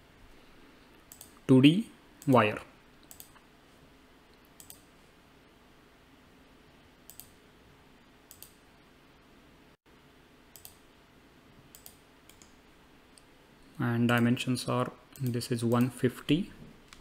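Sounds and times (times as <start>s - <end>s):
faint room hiss: 0.0s - 17.0s.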